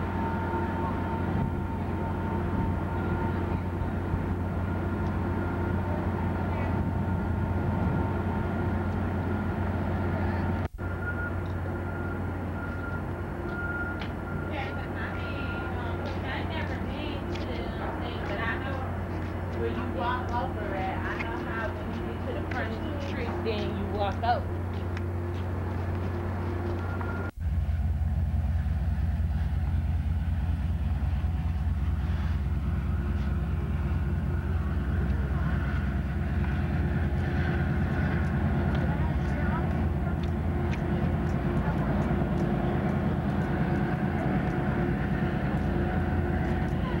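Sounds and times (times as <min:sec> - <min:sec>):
diesel locomotive drone: 0:00.0 - 0:47.0
faint steady whine: 0:00.0 - 0:47.0
freight train rolling past: 0:00.0 - 0:47.0.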